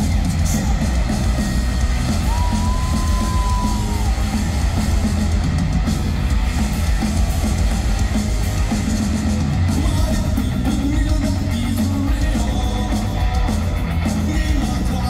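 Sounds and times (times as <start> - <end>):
live rock band playing loud: 0.0 - 15.0.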